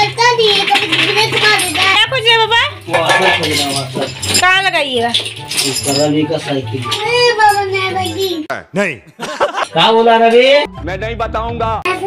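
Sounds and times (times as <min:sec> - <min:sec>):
small metal parts clinking: 0:00.5 - 0:08.2.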